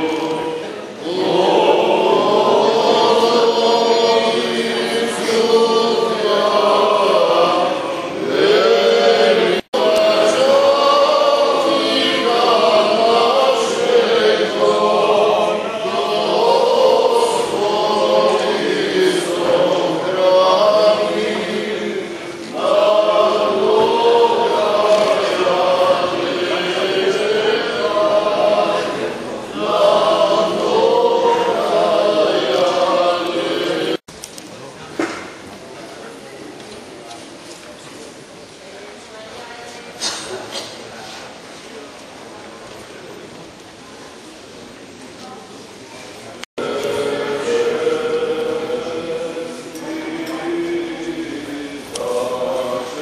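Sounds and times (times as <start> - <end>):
voices chanting a hymn: 0.0 - 34.1, 46.5 - 53.0.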